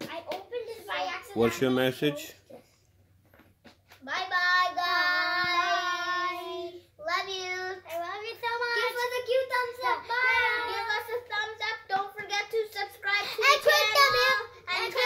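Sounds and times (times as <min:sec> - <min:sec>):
child singing: 0:04.0 - 0:15.0.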